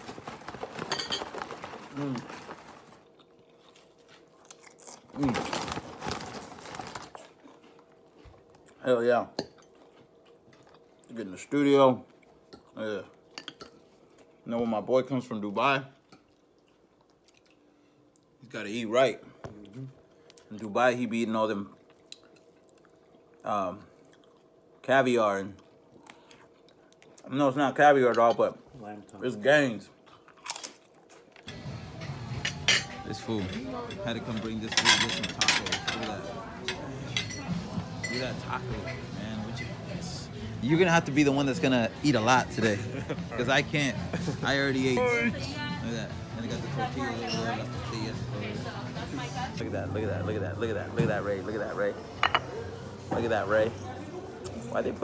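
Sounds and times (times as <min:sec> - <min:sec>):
rustling and crinkling at microphone: 0:00.0 - 0:04.3
chip crunching: 0:00.0 - 0:08.7, 0:30.2 - 0:31.5
background music: 0:35.4 - 0:53.1.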